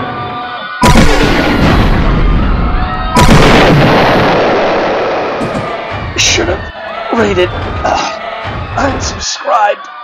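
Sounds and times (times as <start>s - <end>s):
loud explosions rumbling: 0.8s - 8.0s.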